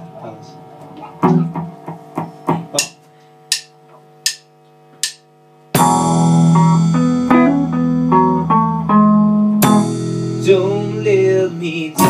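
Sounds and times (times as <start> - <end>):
drum kit hits: 5.8 - 11.1
faint guitar ringing: 5.8 - 12.0.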